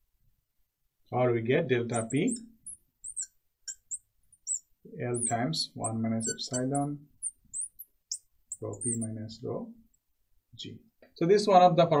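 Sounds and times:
marker squeaking on glass: 1.9 - 9.2.

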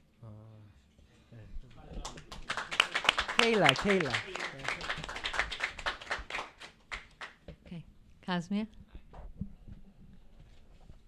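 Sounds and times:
audience clapping: 2.0 - 7.4.

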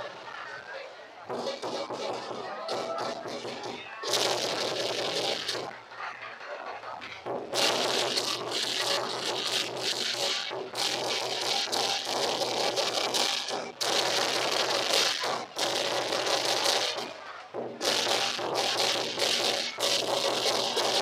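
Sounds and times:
crowd noise: 0.0 - 21.0
loud clattering and crackling: 1.2 - 21.0.

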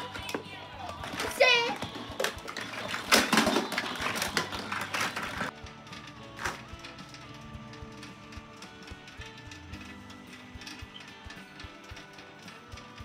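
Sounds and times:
background music: 0.0 - 13.0
plastic toys clattering: 0.0 - 13.0.

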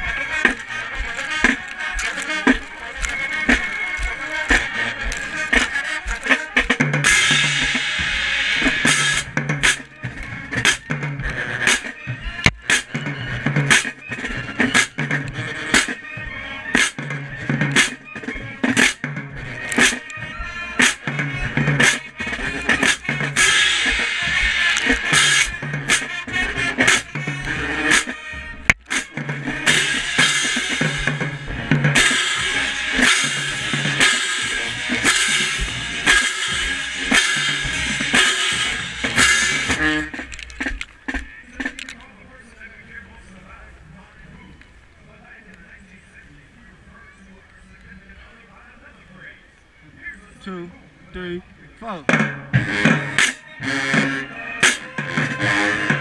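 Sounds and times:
marching band playing: 0.0 - 42.0, 51.8 - 56.0
snare and bass drums: 0.0 - 42.0, 51.8 - 56.0
crash cymbals: 7.0 - 9.8.

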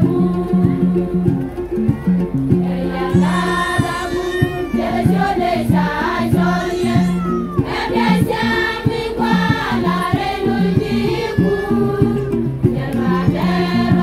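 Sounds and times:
women's choir singing a hymn: 0.0 - 1.4, 2.6 - 14.0
steady beat: 0.0 - 14.0.

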